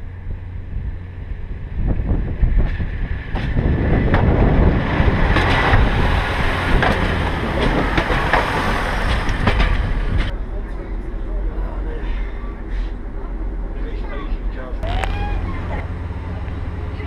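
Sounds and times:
noise inside railbus: 0:00.0 - 0:17.0
railbus engine rumble: 0:00.0 - 0:17.0
railbus underframe clatter: 0:00.0 - 0:17.0
wheels knocking over rail joints: 0:02.5 - 0:10.3.

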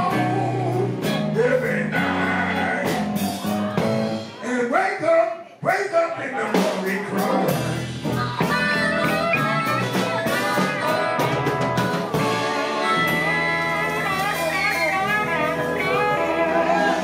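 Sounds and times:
amplified blues harmonica: 0:00.0 - 0:03.2, 0:07.0 - 0:17.0
bass guitar: 0:00.0 - 0:04.8, 0:05.7 - 0:17.0
drums: 0:00.0 - 0:17.0.

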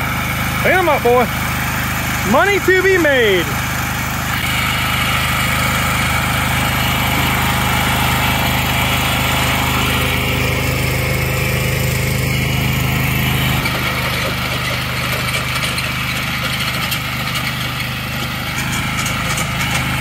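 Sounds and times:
lawn mower engine idling: 0:00.0 - 0:20.0.

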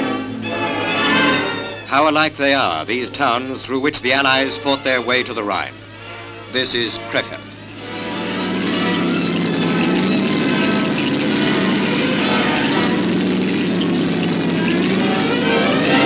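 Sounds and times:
military vehicles engine and track noise: 0:00.0 - 0:16.0.

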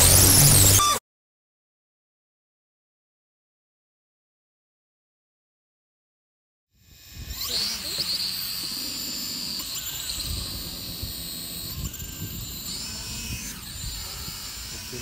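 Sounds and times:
drone motors whirring: 0:00.0 - 0:01.0, 0:06.8 - 0:15.0
wind rumble on microphone: 0:09.9 - 0:15.0.

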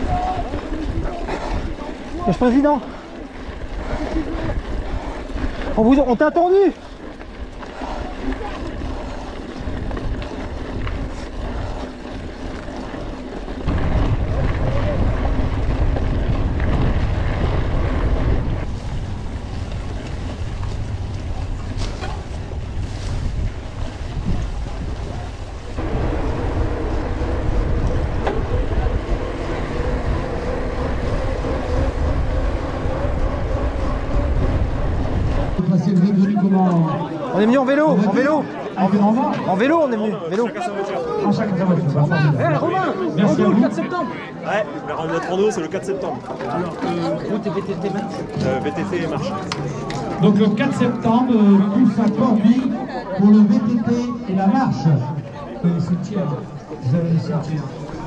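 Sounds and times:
wind buffeting microphone: 0:00.0 - 0:36.0
bike rumbling over rough track: 0:00.0 - 0:39.9, 0:44.6 - 0:58.0.

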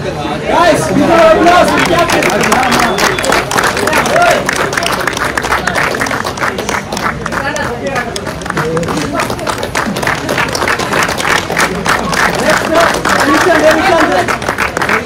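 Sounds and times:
voices shouting and cheering: 0:00.0 - 0:06.1
group clapping: 0:01.1 - 0:15.0.

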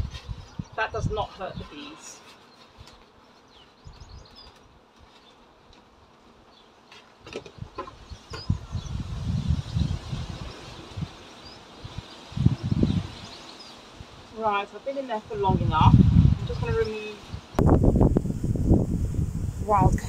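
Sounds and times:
microphone handling rumble: 0:15.4 - 0:16.8, 0:17.5 - 0:20.0.

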